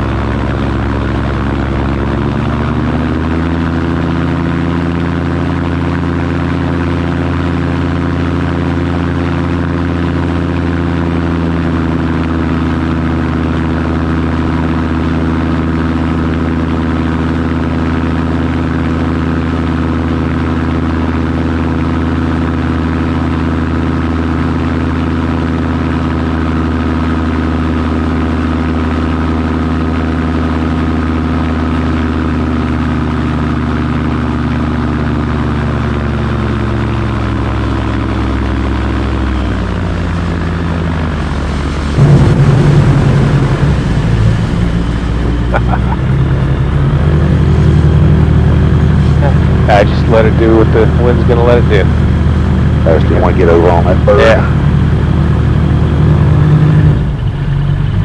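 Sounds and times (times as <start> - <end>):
propeller engine droning: 0.0 - 58.0.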